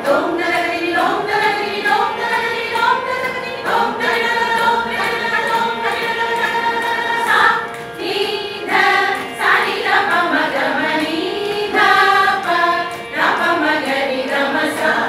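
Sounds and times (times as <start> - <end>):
women singing together: 0.0 - 15.0.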